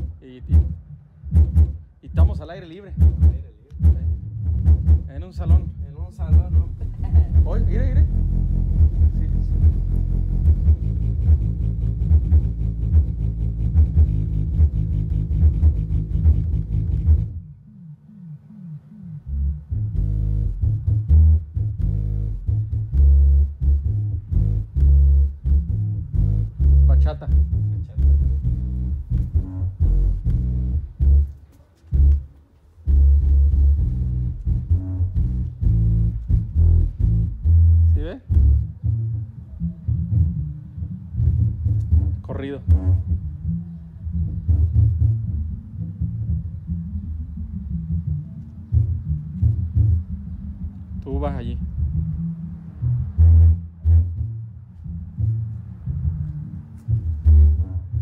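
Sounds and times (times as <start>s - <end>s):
bass-heavy music through speakers: 0.0s - 58.0s.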